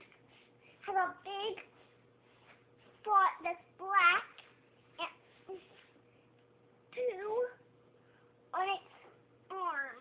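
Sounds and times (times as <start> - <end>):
high-pitched wordless voice: 0.8 - 1.7, 3.0 - 4.4, 6.9 - 7.6, 8.5 - 10.0.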